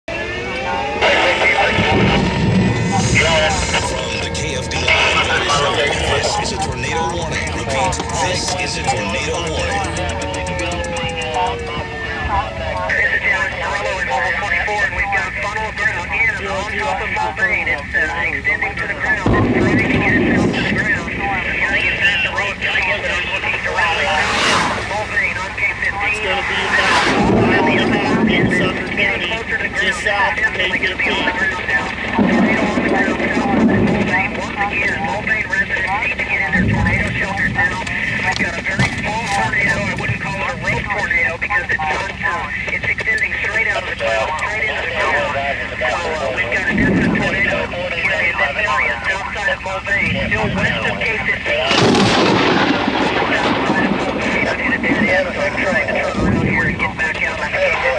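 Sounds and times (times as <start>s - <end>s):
indistinct voices: 0.1s - 57.9s
wind buffeting microphone: 31.1s - 41.0s, 50.0s - 57.4s.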